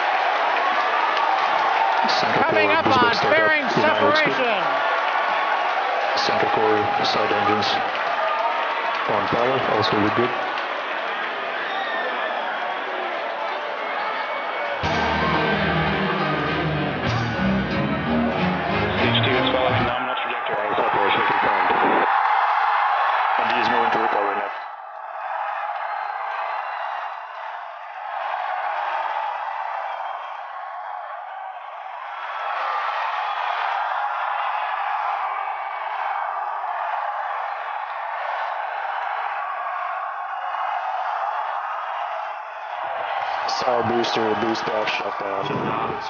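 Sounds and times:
crowd cheering and shouting: 0:00.0 - 0:46.0
music: 0:14.8 - 0:19.9.

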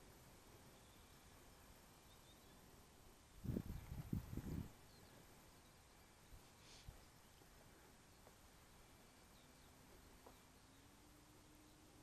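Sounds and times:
wind buffeting microphone: 0:03.4 - 0:04.8.

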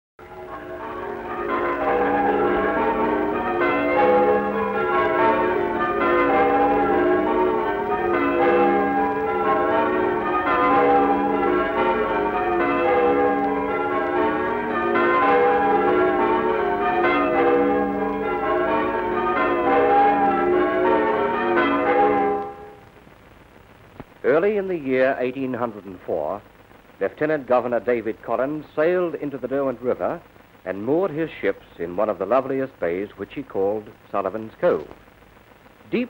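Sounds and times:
church bells change ringing: 0:00.2 - 0:22.8.

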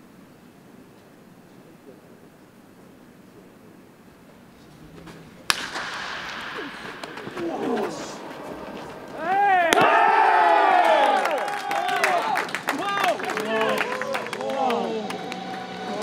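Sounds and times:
players' voices: 0:03.2 - 0:16.0
baseball bat hitting ball: 0:05.1 - 0:10.5
players yelling and cheering: 0:05.5 - 0:16.0.

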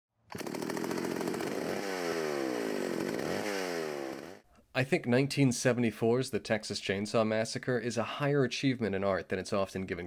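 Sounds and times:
gas chainsaw revving: 0:00.3 - 0:04.4.

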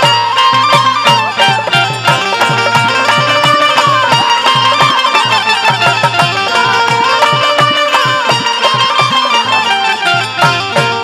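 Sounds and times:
drum beating a quick rhythm: 0:00.0 - 0:11.0
folk melody line: 0:00.0 - 0:11.0
hand cymbals clashing: 0:00.0 - 0:11.0.

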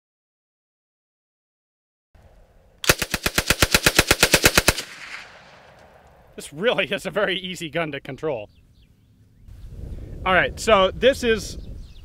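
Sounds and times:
submachine gun automatic burst: 0:02.8 - 0:05.8
gunshot echo: 0:02.8 - 0:06.4.

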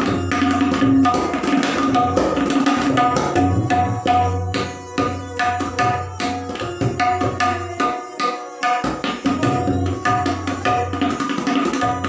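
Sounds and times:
tabla solo: 0:00.0 - 0:12.0.

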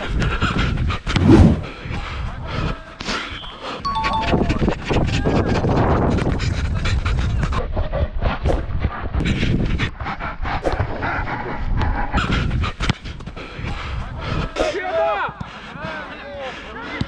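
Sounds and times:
heavy panting: 0:00.0 - 0:02.9, 0:05.8 - 0:14.7, 0:15.4 - 0:17.0
wind rumble: 0:00.8 - 0:01.8.

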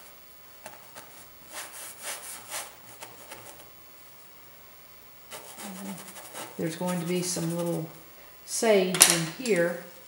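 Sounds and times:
paintbrush scrubbing canvas: 0:00.8 - 0:03.6, 0:05.3 - 0:08.0.

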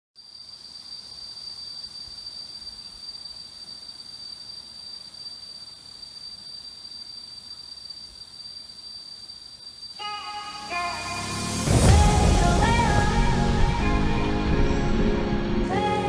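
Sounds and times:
faint background hiss: 0:00.2 - 0:16.0
insects droning: 0:00.2 - 0:16.0.

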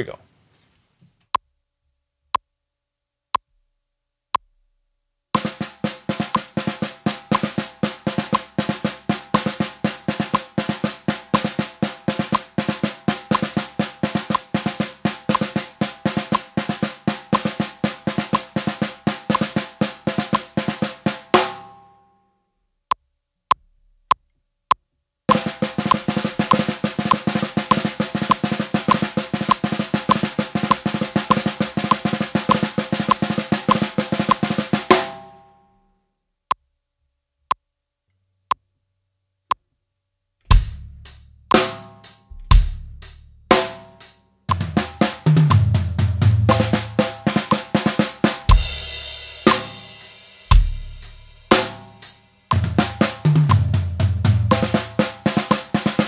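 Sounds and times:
snare drum played with sticks: 0:05.4 - 0:21.7, 0:25.3 - 0:35.3, 0:40.5 - 0:56.0
metronome clicks: 0:06.3 - 0:06.5, 0:07.3 - 0:07.6, 0:08.3 - 0:08.5, 0:12.3 - 0:12.5, 0:13.3 - 0:13.6, 0:14.3 - 0:14.6, 0:15.3 - 0:15.6, 0:18.3 - 0:18.5, 0:19.3 - 0:19.6, 0:22.9 - 0:35.3, 0:43.5 - 0:45.6.

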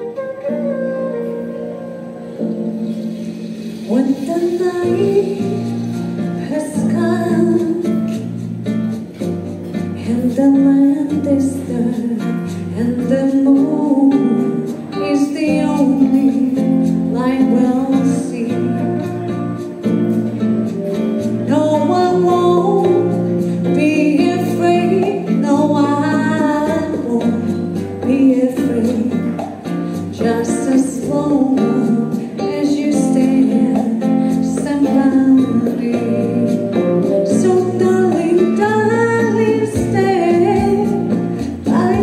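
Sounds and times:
saxophone: 0:00.0 - 0:06.6, 0:14.8 - 0:26.4
backing track with bass and guitar: 0:00.0 - 0:42.0
woman singing: 0:03.8 - 0:08.5, 0:09.7 - 0:42.0.

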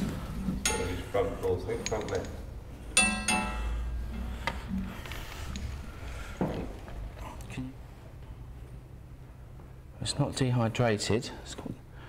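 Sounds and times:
metal pole clinking: 0:00.6 - 0:04.3.

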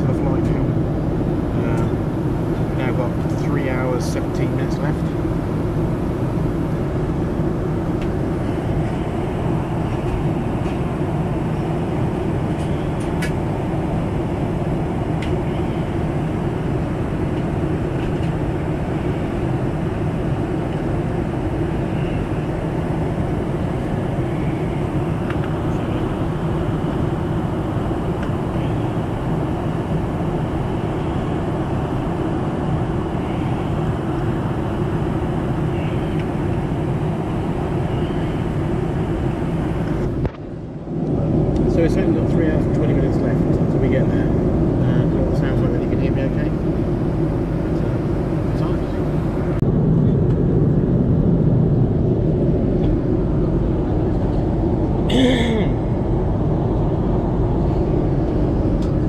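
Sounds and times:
airplane cabin roar: 0:00.0 - 0:59.0.

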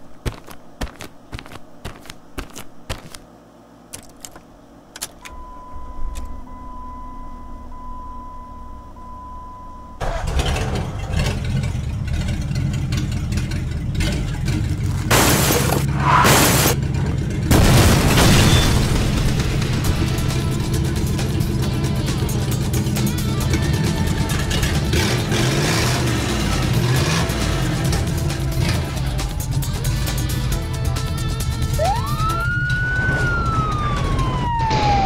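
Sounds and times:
sharp clicks: 0:03.9 - 0:05.4
car engine starting and running: 0:05.0 - 0:30.5.

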